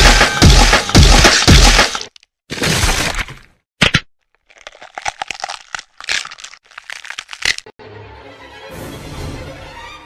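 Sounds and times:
irregular crackling and crunching: 1.0 - 7.8.

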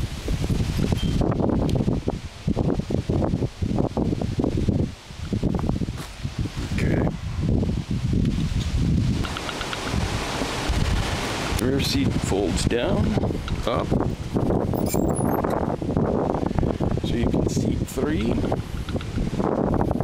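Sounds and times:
wind gusting across microphone: 0.0 - 20.0.

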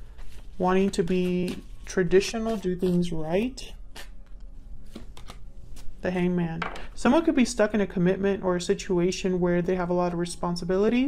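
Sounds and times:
faint room hum: 0.0 - 11.0
cards rustling and tapping: 0.1 - 3.0, 4.2 - 5.9.

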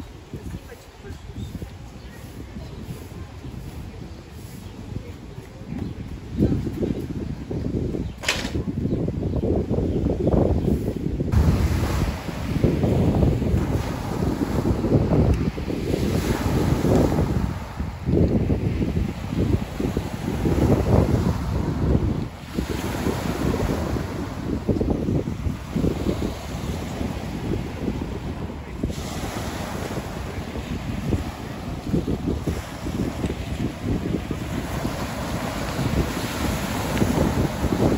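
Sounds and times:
wind buffeting microphone: 0.0 - 37.9
waves breaking on pebble beach: 11.3 - 37.9.

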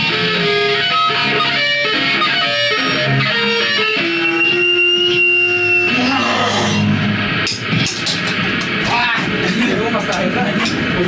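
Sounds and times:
electric guitars ringing chord: 0.0 - 11.0
voices: 8.8 - 11.0.

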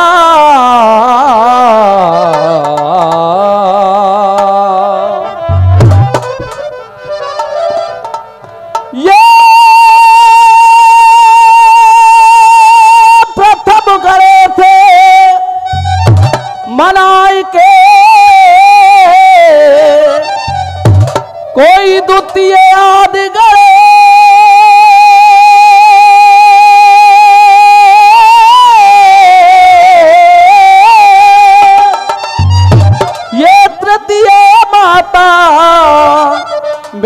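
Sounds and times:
man singing a long high note: 0.0 - 6.1, 8.9 - 20.4, 21.5 - 32.0, 33.2 - 37.0.

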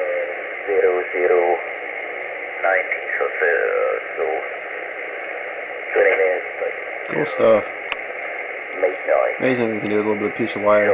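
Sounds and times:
distant radio voice: 0.0 - 1.6, 2.6 - 7.8, 8.7 - 10.9
receiver hiss: 0.0 - 10.9.

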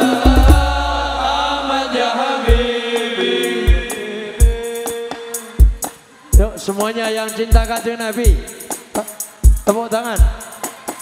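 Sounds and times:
men singing together: 0.0 - 9.1
band playing: 0.0 - 11.0
deep booming drum hits: 0.2 - 1.7, 2.5 - 2.7.

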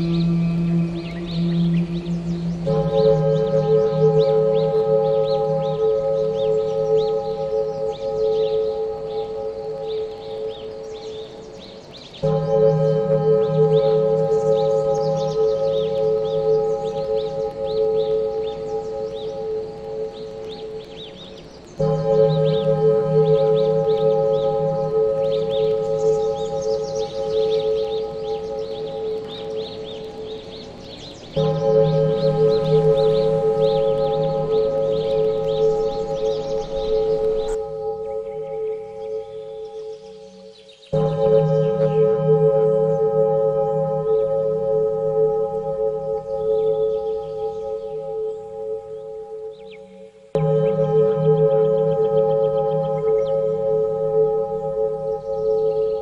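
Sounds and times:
bell-like ringing tone: 0.0 - 11.4, 21.8 - 56.0
low hum: 0.0 - 11.6, 21.6 - 56.0
faint flickering chirping: 0.0 - 56.0.

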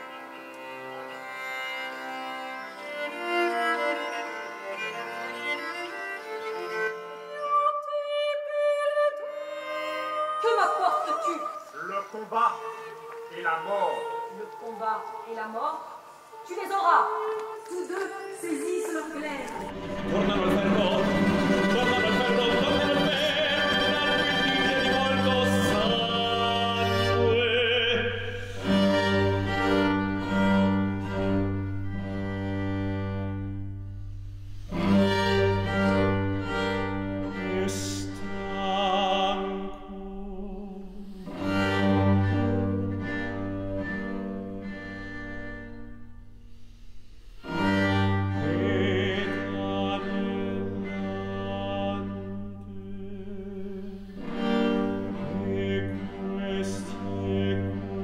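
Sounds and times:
string ensemble holding chords: 0.0 - 7.9, 11.8 - 15.2, 18.9 - 46.4, 47.4 - 58.0.

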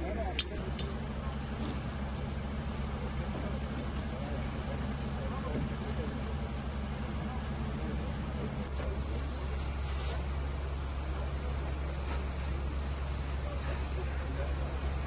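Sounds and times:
vehicle engine idling: 0.0 - 15.0.

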